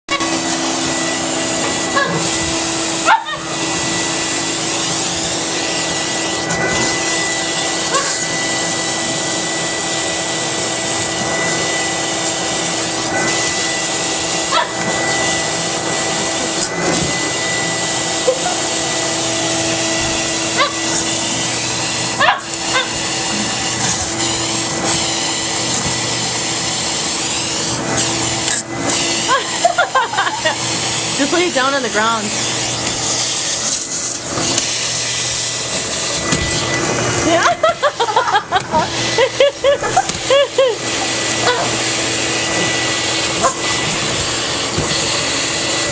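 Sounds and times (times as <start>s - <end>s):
vacuum cleaner running: 0.0s - 45.9s.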